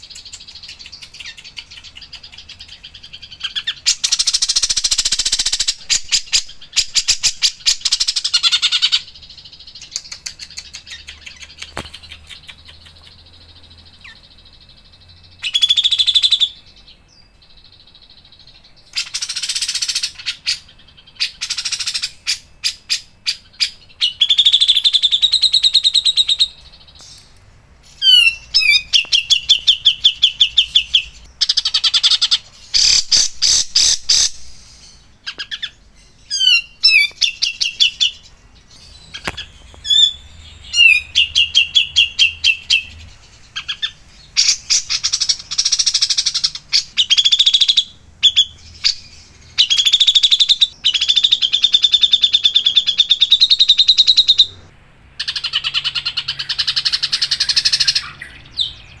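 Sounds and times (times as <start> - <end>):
harsh rattling bird calls: 0.0 - 59.0
songbird singing trills: 0.0 - 59.0.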